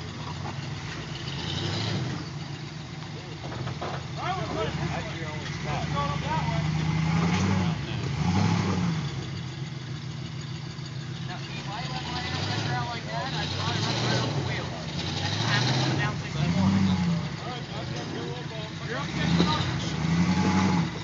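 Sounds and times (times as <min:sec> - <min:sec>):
engine running at low revs: 0:00.0 - 0:21.0.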